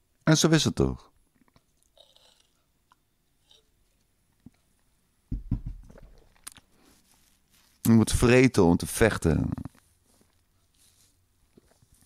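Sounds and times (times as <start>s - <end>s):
soft rustle: 6.2s - 8.0s, 9.6s - 12.0s.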